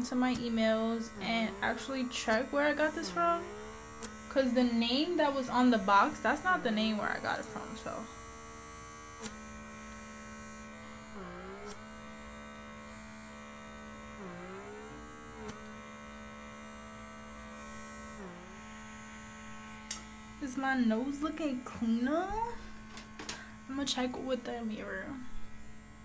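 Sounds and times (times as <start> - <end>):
small suction motor whirring: 0.0 - 26.0.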